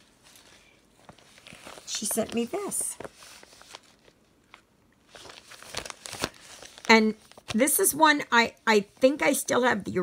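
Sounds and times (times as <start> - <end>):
plastic packaging crinkling: 0.0 - 7.8.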